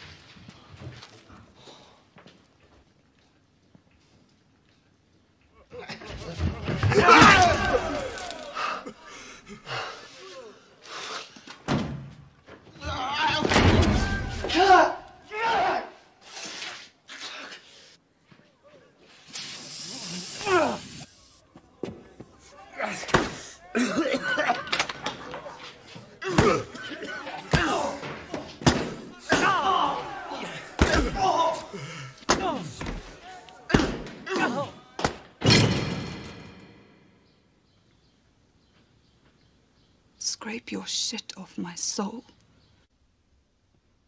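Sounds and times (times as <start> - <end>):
person shouting: 20.3 - 21.0.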